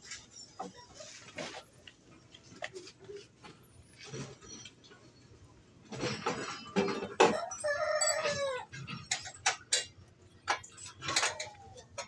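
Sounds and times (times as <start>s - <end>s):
wrenches clinking on metal: 5.9s - 12.0s
rooster crowing: 7.2s - 8.7s.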